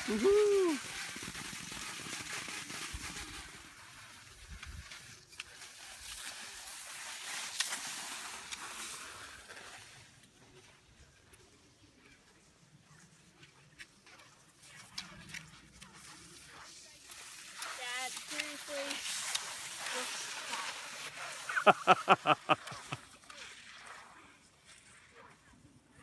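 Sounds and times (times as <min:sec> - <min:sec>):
skis gliding on snow: 0:00.0 - 0:26.0
ski poles clicking: 0:17.0 - 0:23.0.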